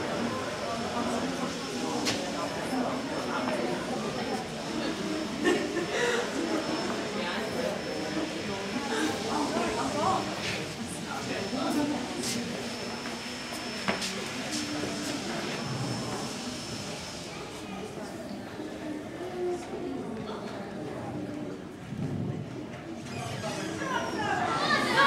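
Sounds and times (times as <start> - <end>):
people talking in background: 0.0 - 25.0.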